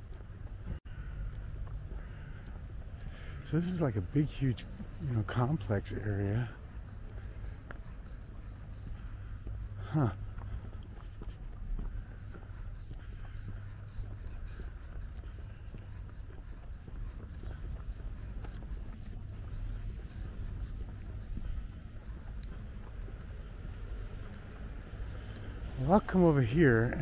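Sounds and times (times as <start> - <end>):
low outdoor rumble: 0.0 - 27.0.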